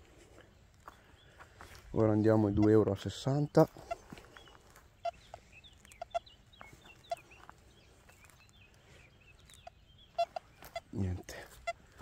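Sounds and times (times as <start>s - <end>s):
small birds chirping: 0.0s - 12.0s
chickens clucking: 2.2s - 7.6s, 9.5s - 12.0s.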